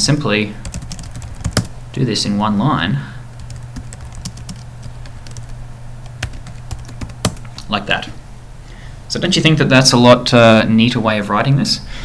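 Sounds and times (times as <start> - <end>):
steady low hum: 0.0 - 11.0
keyboard typing clicks: 0.7 - 2.0, 3.4 - 7.7.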